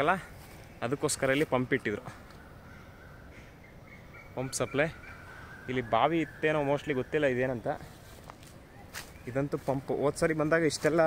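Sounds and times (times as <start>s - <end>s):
distant bird calling: 0.0s - 11.0s.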